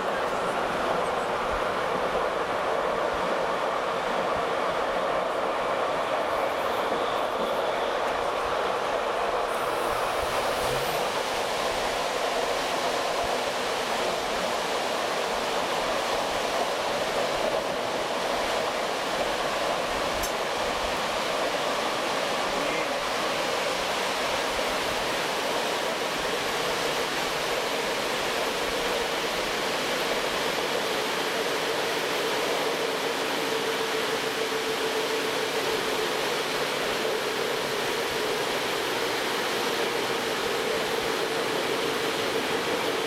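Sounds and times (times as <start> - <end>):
air rushing past train: 0.0 - 43.0
train wheels rolling on rails: 0.0 - 43.0.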